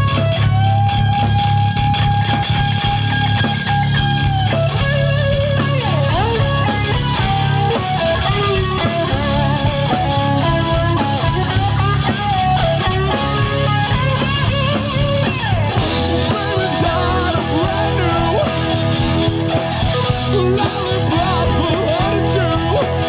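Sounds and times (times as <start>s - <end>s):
bass guitar: 0.0s - 23.0s
distorted electric guitar lead: 0.0s - 23.0s
steady drum beat: 0.0s - 23.0s.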